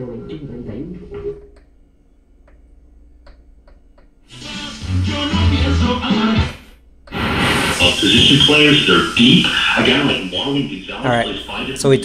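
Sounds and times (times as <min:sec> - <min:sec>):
faint low hum: 0:00.0 - 0:12.0
clicks: 0:01.2 - 0:01.8, 0:02.4 - 0:04.2, 0:07.0 - 0:07.3
radio tuning across stations: 0:04.3 - 0:12.0
radio music and voice: 0:07.1 - 0:12.0.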